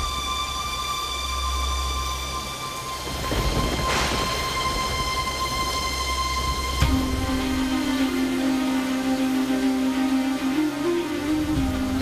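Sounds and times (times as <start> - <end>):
eerie drone: 0.0 - 12.0
low rumbling swell: 0.0 - 12.0.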